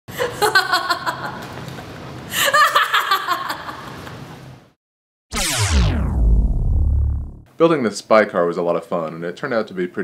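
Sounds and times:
woman laughing: 2.4 - 4.0.

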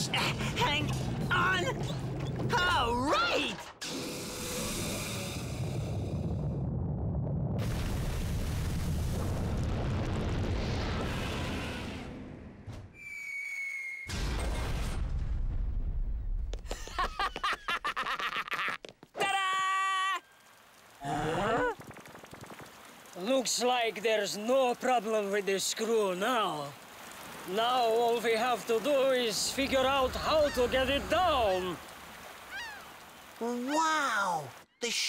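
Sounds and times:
steam hissing over rumble: 3.9 - 6.2
high whistle: 13.0 - 14.1.

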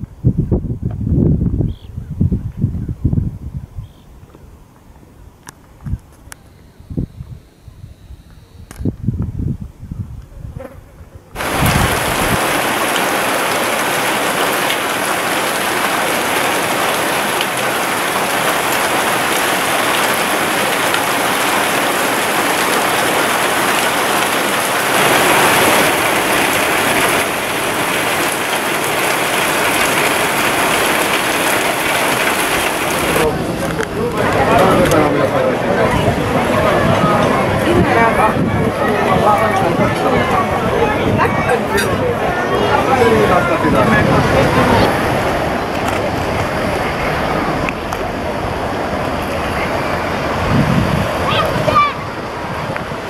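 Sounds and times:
heavy rain falling: 11.4 - 53.0.

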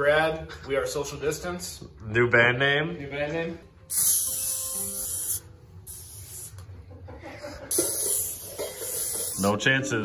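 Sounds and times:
aerosol can spraying: 3.9 - 6.6, 7.7 - 9.6.

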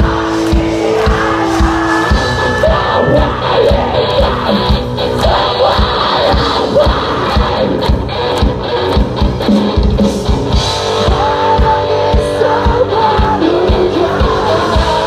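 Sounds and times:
shouted voices: 0.0 - 7.9
metal band playing live: 0.0 - 15.0.

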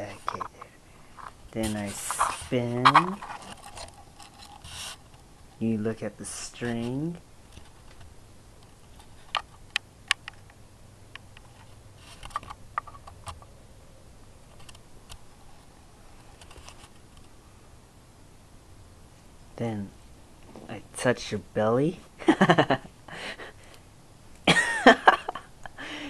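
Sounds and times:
rustling and scratching of handling: 0.0 - 10.4, 11.4 - 13.5, 14.4 - 17.4, 19.6 - 22.2.

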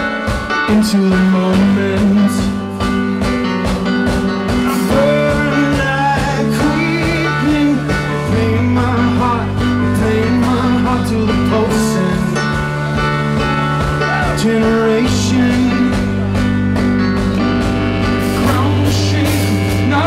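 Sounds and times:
man singing: 0.0 - 2.9, 4.5 - 13.2, 13.8 - 16.5, 17.4 - 20.0
drum kit beat: 0.0 - 20.0
keyboard chords: 0.0 - 20.0.

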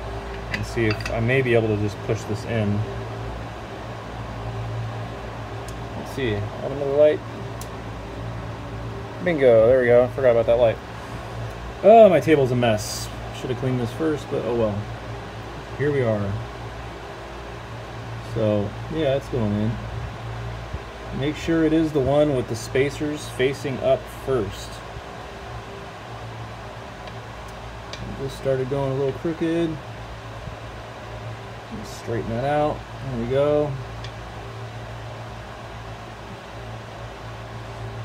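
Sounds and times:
fan humming: 0.0 - 38.0.

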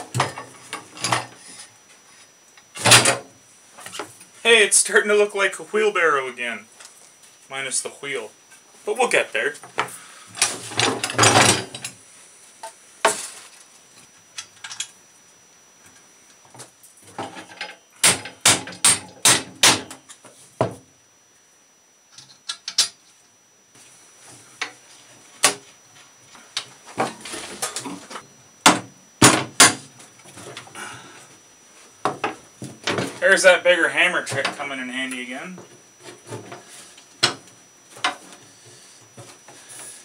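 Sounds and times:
scraping and handling noise: 9.6 - 15.2, 22.1 - 28.3.

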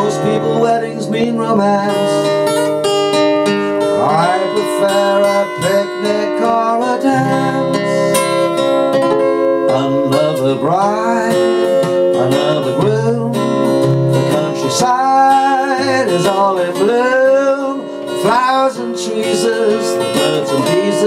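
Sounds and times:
man singing: 0.0 - 2.7, 4.0 - 8.3, 9.6 - 21.0
acoustic guitar strumming: 0.0 - 21.0.

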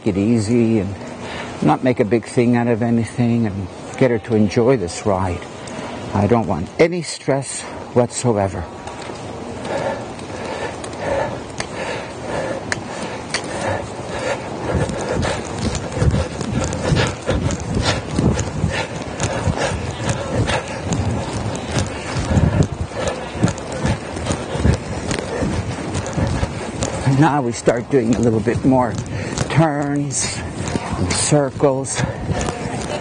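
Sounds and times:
horse hoofbeats on dirt: 12.3 - 33.0.

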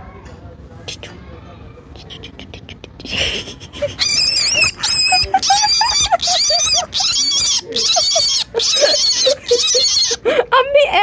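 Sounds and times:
baby rabbit screaming: 4.0 - 10.3.

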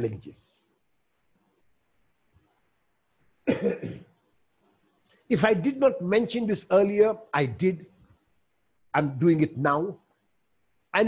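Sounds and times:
man coughing: 3.4 - 4.1.

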